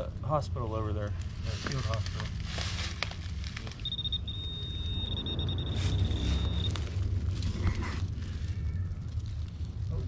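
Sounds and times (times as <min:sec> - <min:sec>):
low steady rumble: 0:00.0 - 0:10.0
metal detector beeping: 0:03.8 - 0:06.9.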